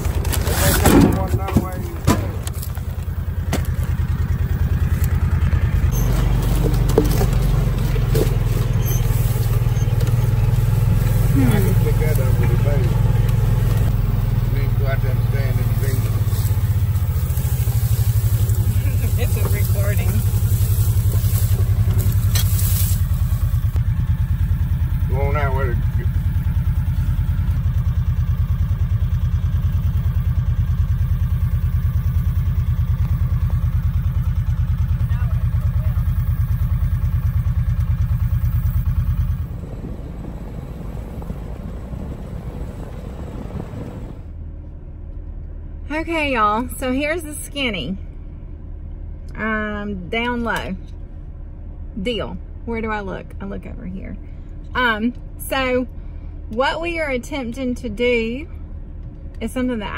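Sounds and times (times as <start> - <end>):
vehicle engine running: 0.0 - 59.9.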